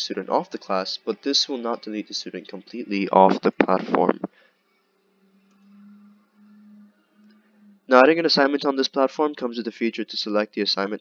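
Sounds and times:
background hiss: 0.0s - 11.0s
faint low hum: 0.0s - 11.0s.

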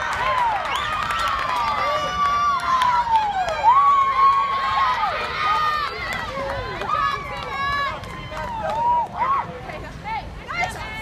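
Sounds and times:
women shouting and cheering: 2.1s - 11.0s.

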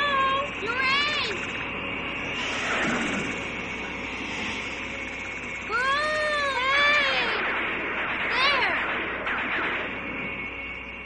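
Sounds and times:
steady whooshing hiss: 2.2s - 5.7s.

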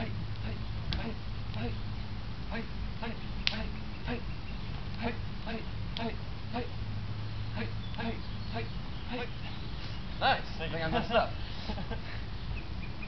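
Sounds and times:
hands slapping arms: 3.4s - 3.6s.

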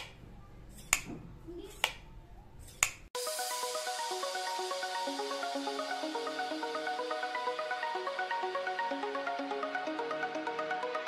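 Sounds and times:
background music melody: 3.2s - 11.0s.

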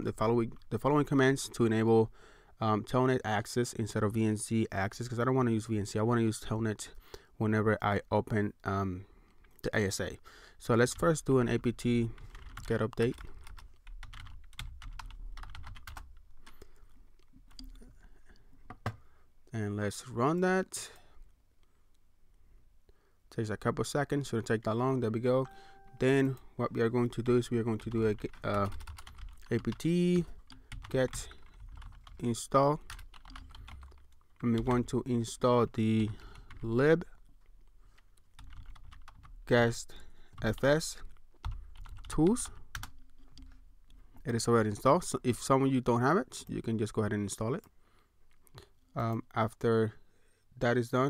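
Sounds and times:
keyboard typing: 10.8s - 16.7s, 25.3s - 35.0s, 36.0s - 39.4s, 40.3s - 43.6s.

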